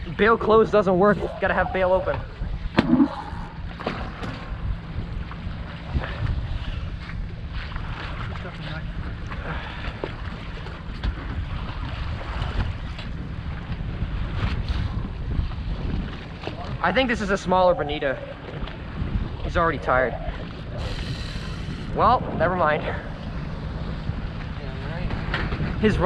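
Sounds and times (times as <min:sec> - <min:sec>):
water washing against boat hull: 0:00.0 - 0:26.0
wind rumble on microphone: 0:00.0 - 0:26.0.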